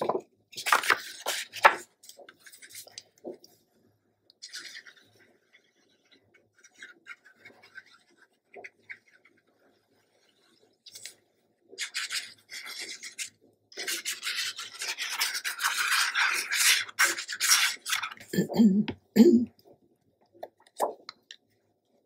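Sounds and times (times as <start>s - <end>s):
paper being handled: 0.0s - 3.1s
glue bottle tip scraping paper: 11.8s - 18.2s.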